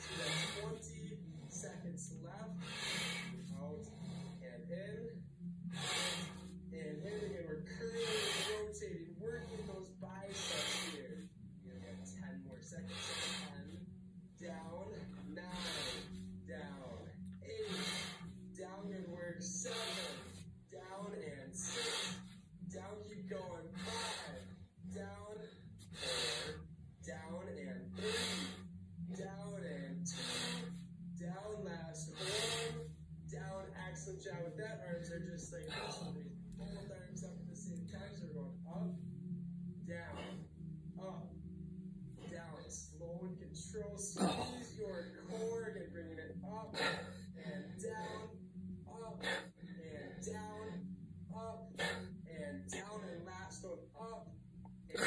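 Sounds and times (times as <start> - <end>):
man breathing hard: 0.0 - 4.5, 5.4 - 20.6, 21.5 - 22.6, 23.7 - 26.7, 27.9 - 28.9, 30.0 - 31.2, 32.1 - 33.1, 46.7 - 51.1
low hum: 0.0 - 55.0.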